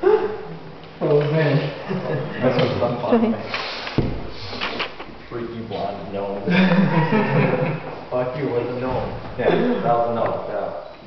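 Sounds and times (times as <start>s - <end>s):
people talking: 1.0s - 3.5s, 5.3s - 10.8s.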